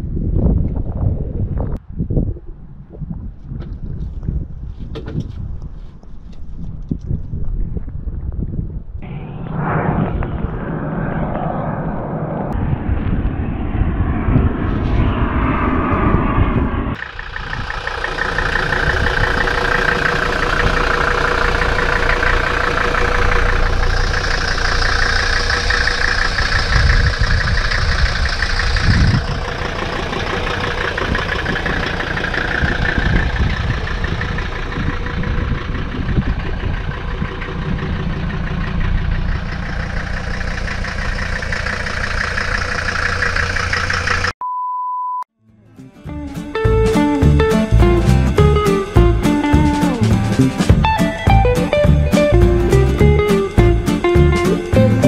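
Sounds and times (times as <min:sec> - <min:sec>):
muffled sound: 0:09.0 - 0:17.0
diesel engine idling: 0:17.0 - 0:44.3, 0:46.5 - 0:55.0.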